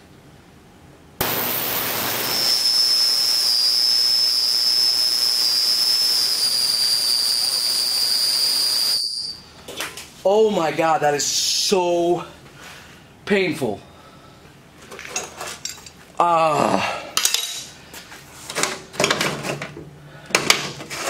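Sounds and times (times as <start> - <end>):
ultrasonic cleaner hiss and whine: 0.0 - 14.9.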